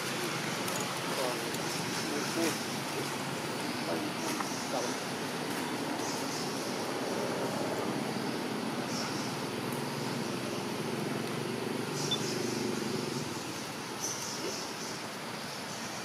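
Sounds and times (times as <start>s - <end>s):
distant road traffic: 0.0s - 16.0s.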